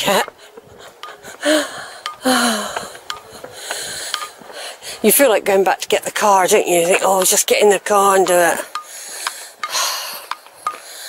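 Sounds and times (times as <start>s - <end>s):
footsteps: 0.0s - 11.0s
person breathing heavily: 0.4s - 5.1s, 8.6s - 11.0s.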